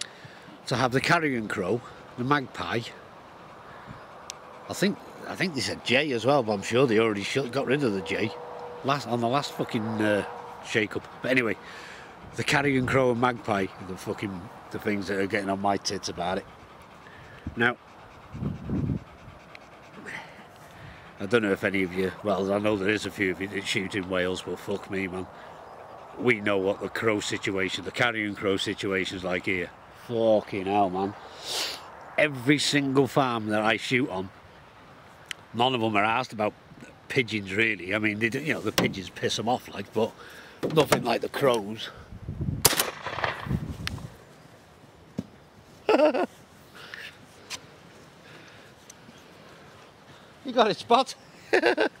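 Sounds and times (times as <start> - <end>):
dog panting: 0.8 - 28.4
shotgun shot with echo: 42.6 - 43.6.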